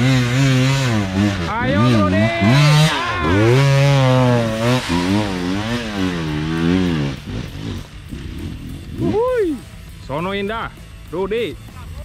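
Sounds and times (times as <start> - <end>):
dirt bike engine revving: 0.0 - 11.2.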